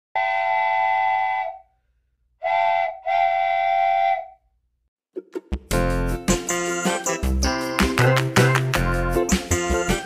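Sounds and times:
multi-note whistle blasts: 0.2s - 1.7s, 2.4s - 4.4s.

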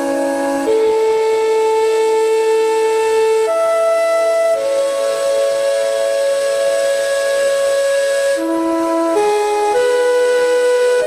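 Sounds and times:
flute holding long note: 0.0s - 11.0s.

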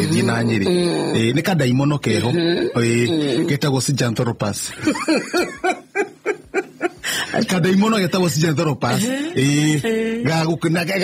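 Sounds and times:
person laughing: 4.8s - 7.4s
person speaking: 7.2s - 11.0s.

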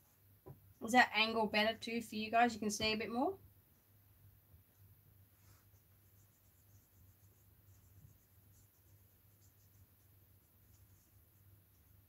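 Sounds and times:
paintbrush scratching: 5.3s - 12.0s.

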